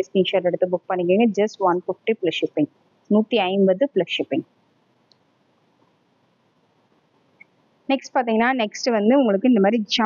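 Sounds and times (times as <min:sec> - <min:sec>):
woman speaking: 0:00.0 - 0:04.4, 0:07.9 - 0:10.0.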